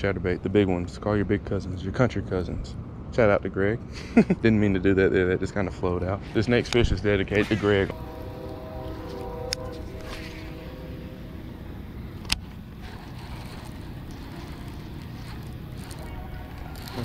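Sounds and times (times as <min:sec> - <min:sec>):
fishing reel spool whirring: 0:07.9 - 0:17.0
reel being cranked: 0:12.7 - 0:17.0.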